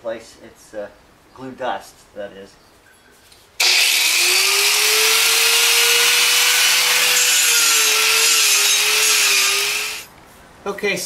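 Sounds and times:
power tool grinding concrete: 0:03.6 - 0:10.1.

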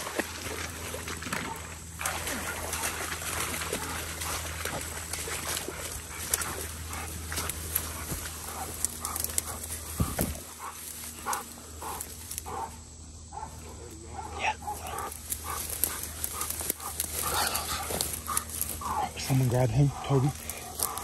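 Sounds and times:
brush crackling: 0:00.0 - 0:21.0
dogs barking: 0:01.3 - 0:21.0.

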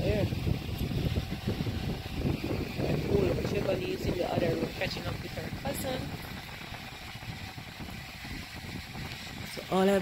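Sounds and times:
low rumble of handling noise: 0:00.0 - 0:10.0
muffled voices in conversation: 0:02.8 - 0:06.6.

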